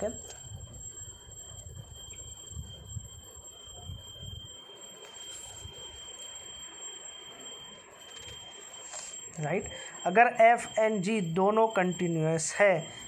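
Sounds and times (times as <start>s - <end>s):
high-pitched whine: 0.0s - 13.0s.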